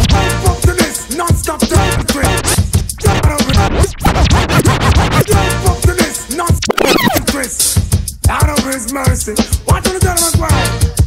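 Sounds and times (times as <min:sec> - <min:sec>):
hip-hop beat: 0:00.0 - 0:11.0
record scratching on turntable: 0:02.0 - 0:05.4, 0:06.6 - 0:07.3.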